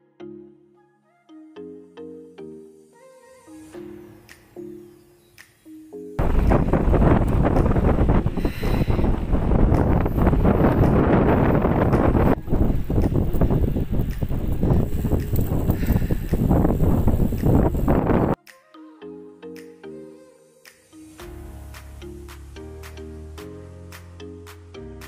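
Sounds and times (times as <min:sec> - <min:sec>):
background music: 0:00.0 - 0:09.0, 0:17.3 - 0:25.0
wind buffeting microphone: 0:06.2 - 0:18.4.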